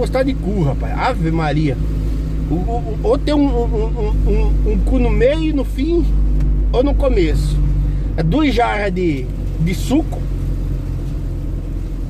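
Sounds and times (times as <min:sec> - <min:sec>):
vehicle rumble inside cabin: 0:00.0 - 0:12.0.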